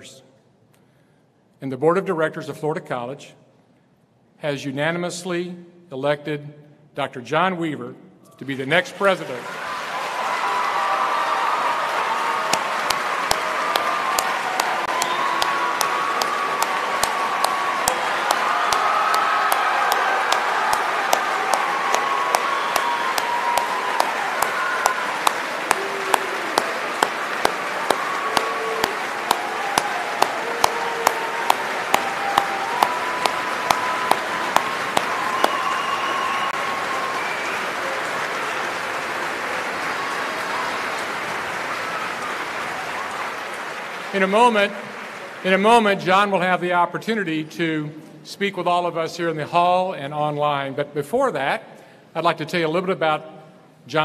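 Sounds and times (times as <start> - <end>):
large audience applauding: 8.9 - 46.4
close loud hand claps: 9.2 - 45.5.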